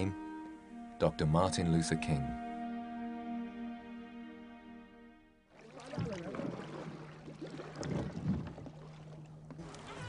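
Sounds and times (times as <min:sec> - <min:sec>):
water: 0:05.5 - 0:10.0
wind: 0:05.5 - 0:10.0.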